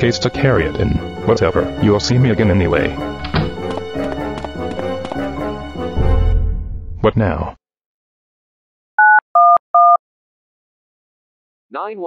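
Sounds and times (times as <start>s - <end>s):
phone keypad beeps: 9.0s - 10.0s.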